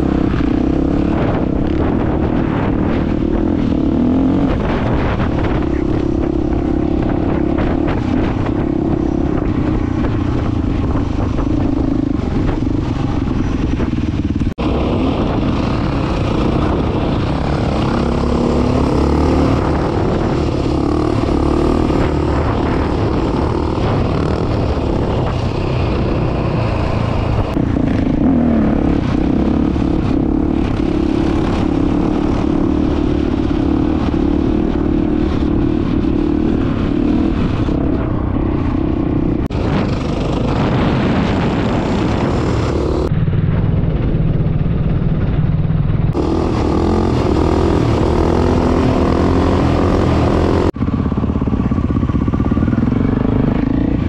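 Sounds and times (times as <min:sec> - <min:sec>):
dirt bike engine revving: 0:00.0 - 0:43.1, 0:46.1 - 0:54.0.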